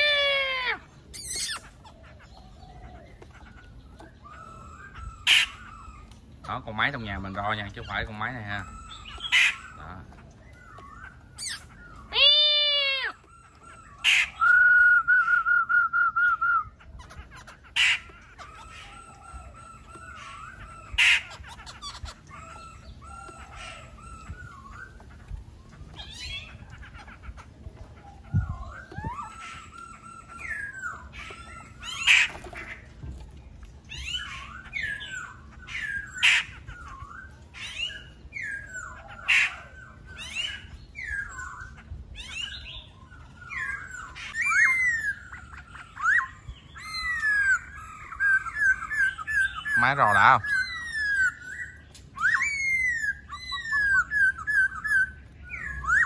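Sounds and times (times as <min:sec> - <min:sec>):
sharp bird calls: 0:00.0 - 0:56.0
bird singing whistled phrases: 0:13.8 - 0:16.8, 0:40.1 - 0:56.0.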